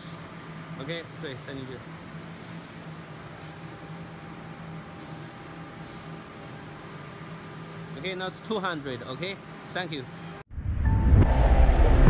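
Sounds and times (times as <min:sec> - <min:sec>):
electrical hum and hiss: 0:00.0 - 0:10.4.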